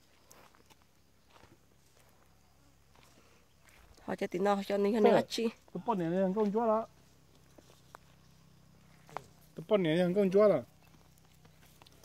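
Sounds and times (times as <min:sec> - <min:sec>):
footsteps on dry grass: 0:00.0 - 0:04.0, 0:06.4 - 0:09.6, 0:10.8 - 0:12.0.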